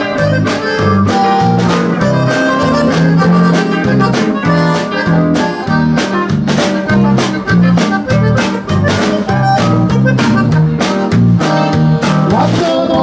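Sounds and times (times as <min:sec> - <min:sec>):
bass line: 0:00.0 - 0:13.0
button accordion: 0:00.0 - 0:13.0
guitar: 0:00.0 - 0:13.0
keyboard: 0:00.0 - 0:13.0
steady drum beat: 0:00.0 - 0:13.0.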